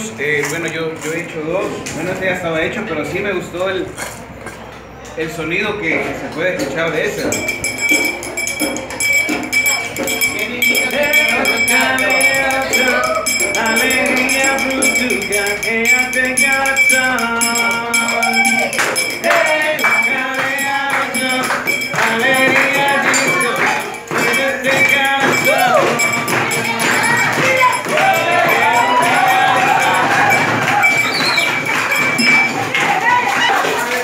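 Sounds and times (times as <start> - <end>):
metal can maraca shaking: 7.1 - 34.0
music: 7.4 - 33.9
person singing: 10.0 - 31.4.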